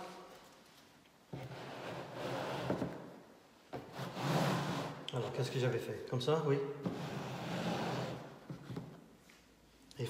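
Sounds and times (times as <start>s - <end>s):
canvas panels scraping across table: 1.3s - 3.0s, 3.8s - 5.0s, 6.8s - 9.0s.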